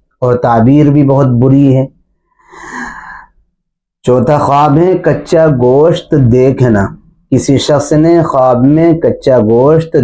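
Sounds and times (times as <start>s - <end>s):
man breathing in: 2.2s - 3.5s.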